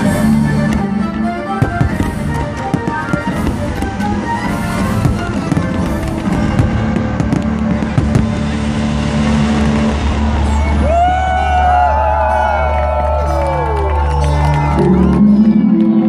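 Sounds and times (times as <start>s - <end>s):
fireworks bursting and crackling: 0.0s - 12.0s
loud music: 0.0s - 16.0s.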